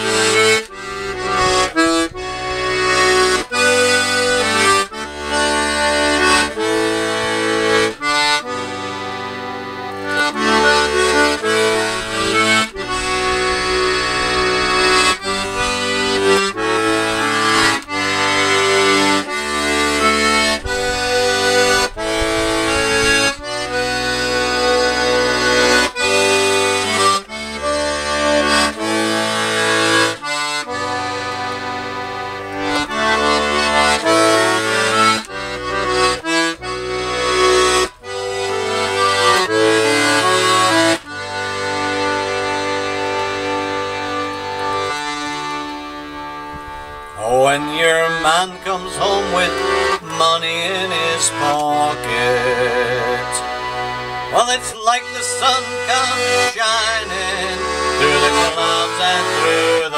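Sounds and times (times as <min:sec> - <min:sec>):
button accordion playing chords: 0:00.0 - 0:59.9.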